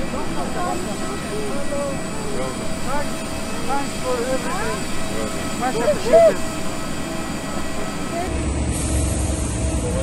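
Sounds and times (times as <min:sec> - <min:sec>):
faint voices: 0:00.0 - 0:08.4
aircraft noise: 0:00.0 - 0:10.0.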